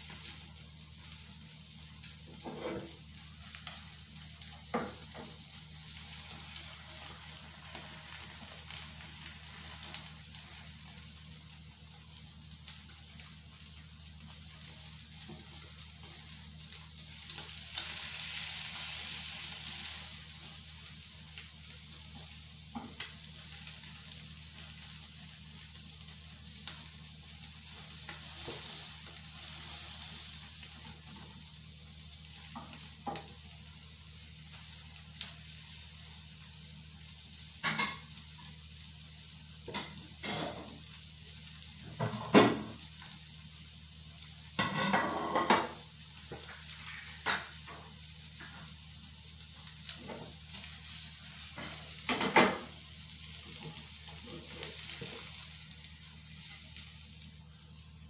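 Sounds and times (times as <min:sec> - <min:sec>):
food sizzling in a frying pan: 0:00.0 - 0:58.0
spatula scraping a pan: 0:02.4 - 0:02.9.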